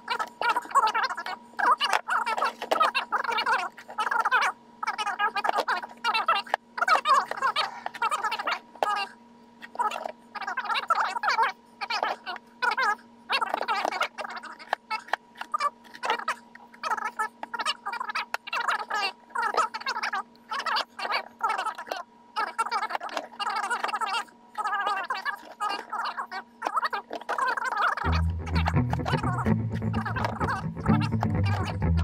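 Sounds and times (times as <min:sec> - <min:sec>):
fast-forwarded high-pitched speech: 0:00.0 - 0:32.0
steady low hum: 0:27.9 - 0:32.0.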